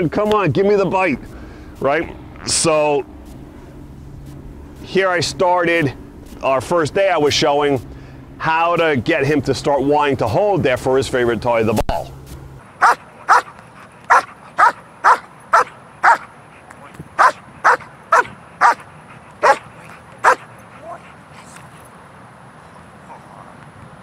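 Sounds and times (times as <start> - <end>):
dog barking: 12.8 - 16.3, 17.2 - 21.1.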